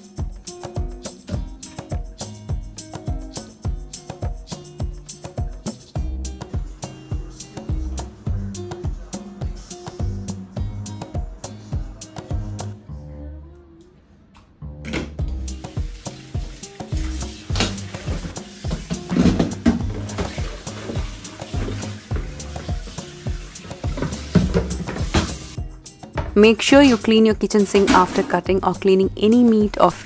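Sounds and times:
background music: 0.0 - 30.0
plastic bowls knocking on sink: 17.5 - 22.3, 23.8 - 25.5
tap running into steel sink: 17.5 - 23.0, 23.8 - 25.5.

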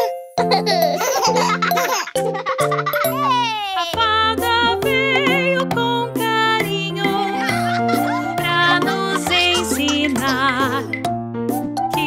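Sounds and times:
cartoon baby giggling: 0.0 - 4.0, 7.1 - 10.8
upbeat children's song: 1.4 - 12.0.

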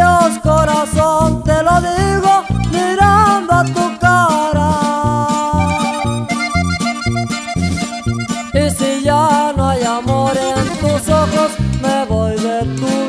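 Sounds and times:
accordion melody: 0.0 - 13.0
plucked-string chords and bass: 0.0 - 13.0.

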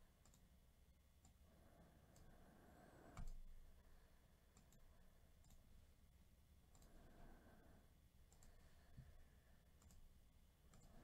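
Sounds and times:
soft computer clicks: 0.2 - 0.5, 3.2 - 3.5, 4.5 - 5.7, 6.7 - 7.0, 8.3 - 8.6, 9.8 - 10.1, 10.7 - 11.0.

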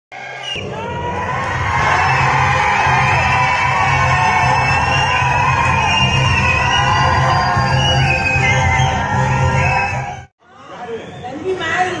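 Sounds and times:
crowd yelling and cheering: 0.1 - 12.0.

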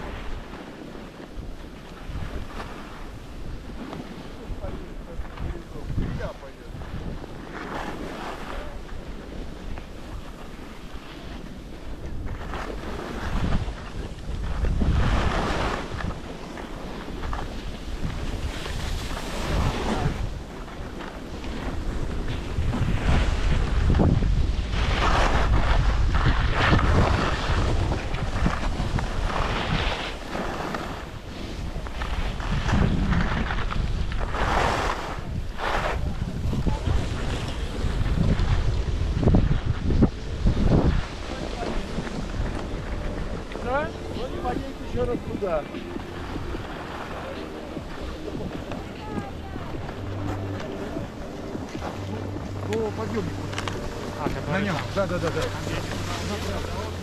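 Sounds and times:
skis scraping across snow: 0.0 - 57.0
wind buffeting microphone: 0.0 - 57.0
low rumble: 35.6 - 57.0.

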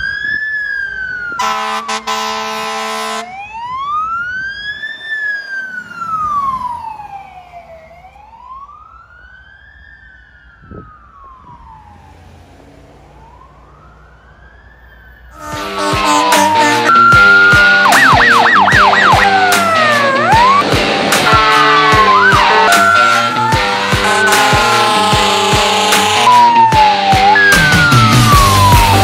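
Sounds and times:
fire truck siren wailing: 0.0 - 29.0
truck horn blast: 1.4 - 3.4, 15.3 - 26.7.

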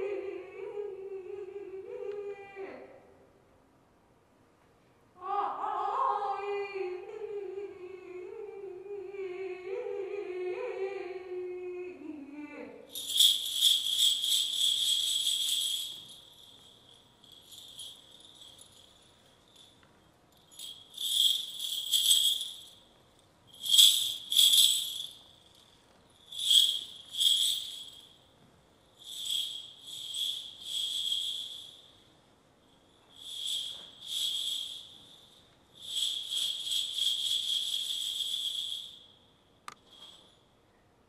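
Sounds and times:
high shimmering jingling rattle: 12.9 - 40.5.

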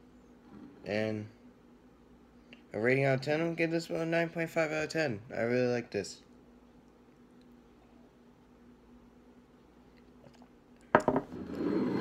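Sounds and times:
faint steady hum: 0.0 - 12.0
person drinking soda: 9.9 - 10.6.

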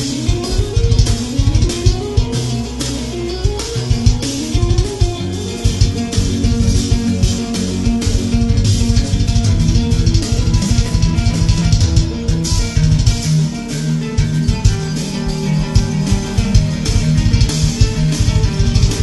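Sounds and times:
bass guitar: 0.0 - 19.0
drum kit: 0.0 - 19.0
electric guitar fast lead runs: 0.0 - 19.0.

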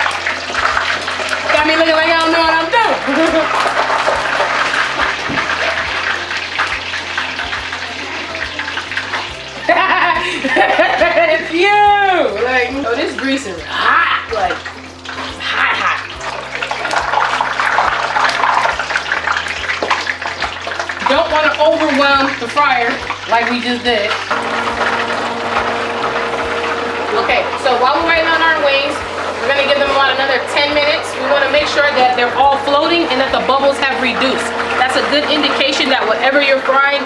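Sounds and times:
chicken wings sizzling in oil: 0.0 - 37.0
woman talking and laughing: 2.4 - 3.6, 9.6 - 14.6, 15.4 - 16.2.

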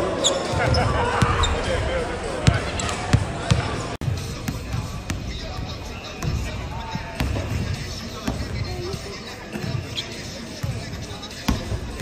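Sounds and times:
faint voices: 0.0 - 12.0
music: 4.0 - 12.0
basketballs bouncing on wood floor: 6.2 - 9.8.

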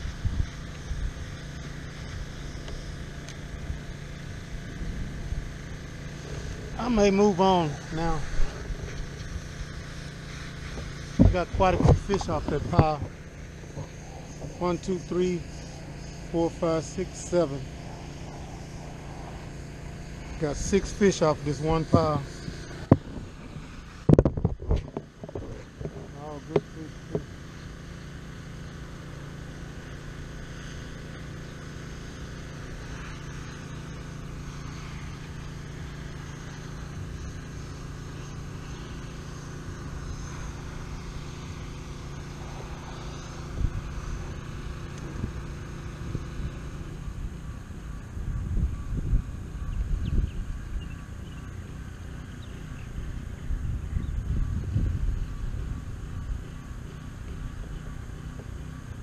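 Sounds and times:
wind rumbling on microphone: 0.0 - 1.4, 10.6 - 14.6, 21.8 - 26.2, 42.5 - 51.4, 52.8 - 56.5
kayak motor humming: 0.0 - 59.0.

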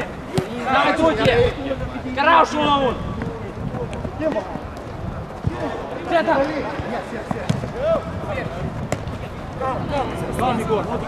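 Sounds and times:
boot kicking football: 6.7 - 7.8.

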